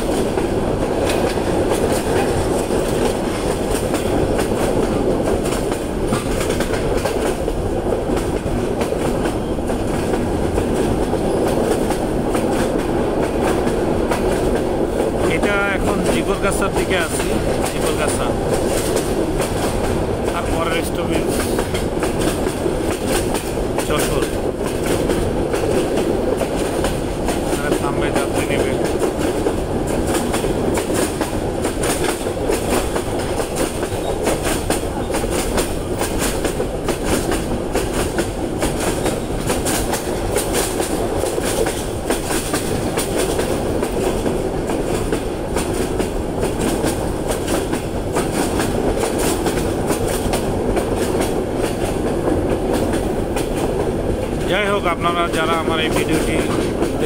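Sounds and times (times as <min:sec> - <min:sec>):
train wheels clattering over rails: 0:00.0 - 0:57.0.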